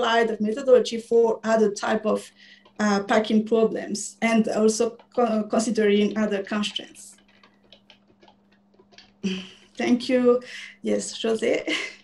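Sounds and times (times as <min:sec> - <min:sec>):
low electrical hum: 0:00.0 - 0:12.0
faint scattered clicks: 0:04.2 - 0:09.8.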